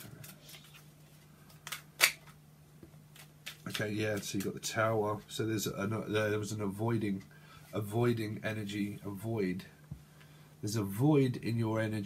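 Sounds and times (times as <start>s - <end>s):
faint low hum: 0.0s - 12.0s
card snap: 1.6s - 2.4s.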